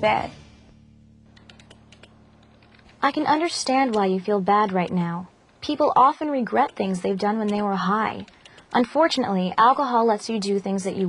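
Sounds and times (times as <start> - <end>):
steady low hum: 0.0 - 11.0
keyboard typing: 1.3 - 5.6, 6.5 - 9.3.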